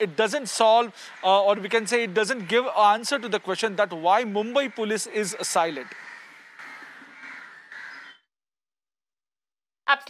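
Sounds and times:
faint street background: 0.0s - 8.4s
crow cawing: 0.1s - 8.3s.

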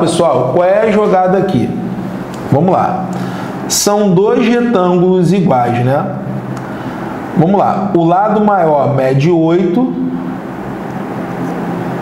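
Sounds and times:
steady hiss and rumble: 0.0s - 12.0s.

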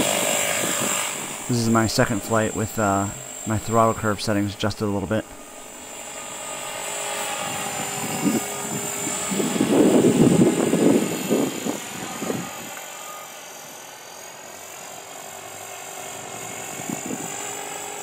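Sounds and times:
rotor blades whooshing: 0.0s - 12.8s
rc helicopter motor whine: 0.0s - 18.0s.

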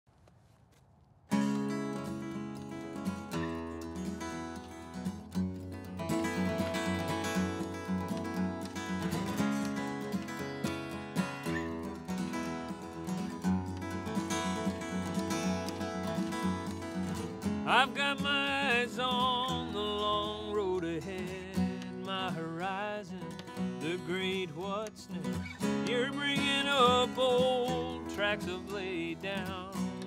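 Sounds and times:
acoustic guitar playing: 1.3s - 30.0s.

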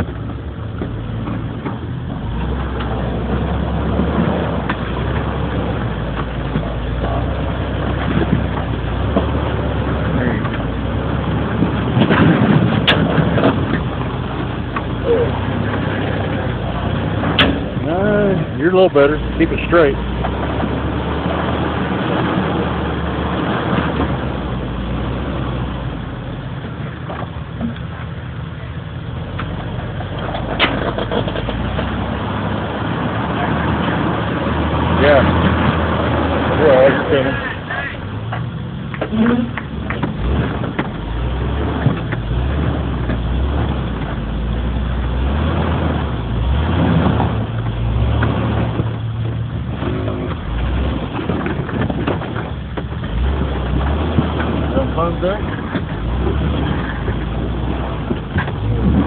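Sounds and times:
knocks from rocks and chassis: 0.0s - 59.0s
truck engine running low: 0.0s - 59.0s.

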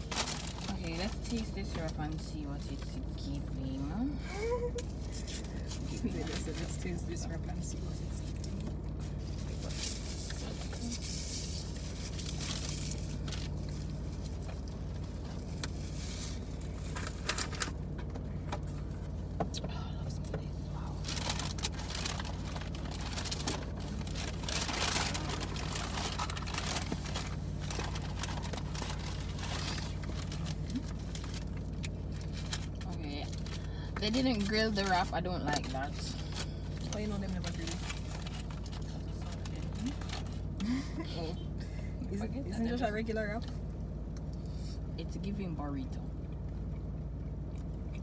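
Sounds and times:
food packaging rustling: 0.0s - 1.2s, 21.1s - 33.6s
low hum inside car: 0.0s - 48.0s.

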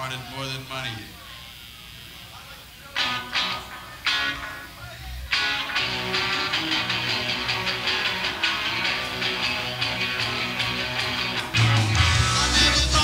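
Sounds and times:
guitar chords: 3.0s - 13.0s
loud rock band playing: 5.3s - 13.0s.

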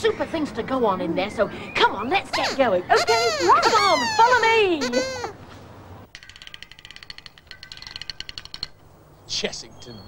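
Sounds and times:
fast sharp high clicks: 6.1s - 8.8s.

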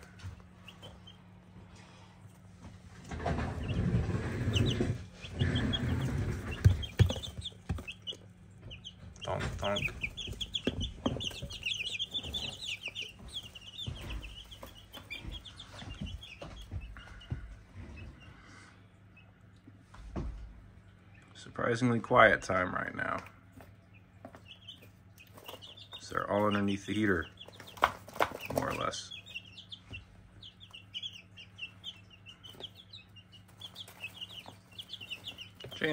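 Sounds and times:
chicks peeping: 0.0s - 35.9s.

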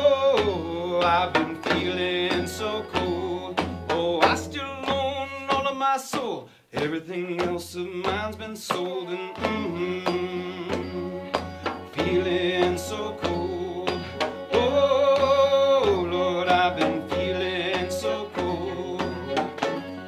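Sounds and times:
man singing: 0.0s - 20.0s
strummed acoustic guitar: 0.0s - 20.0s.

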